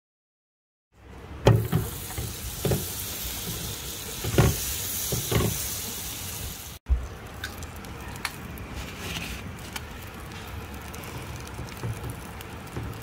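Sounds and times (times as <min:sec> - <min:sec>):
food sizzling in a frying pan: 0:01.5 - 0:13.0.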